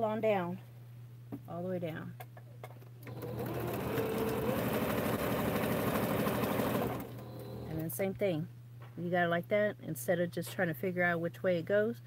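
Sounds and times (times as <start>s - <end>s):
sewing machine running: 3.0s - 7.8s.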